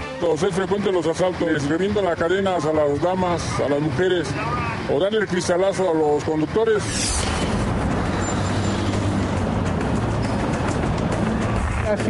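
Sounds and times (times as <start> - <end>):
background music: 0.0 - 12.0
slow road traffic: 0.0 - 12.0.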